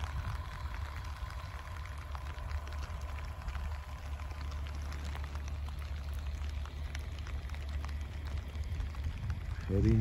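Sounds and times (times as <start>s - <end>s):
light rain pattering: 0.0s - 10.0s
motorhome engine running: 0.0s - 10.0s.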